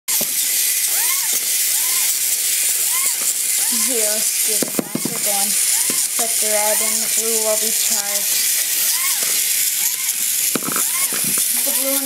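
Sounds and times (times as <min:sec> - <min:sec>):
toy robot hissing and whining: 0:00.1 - 0:12.0.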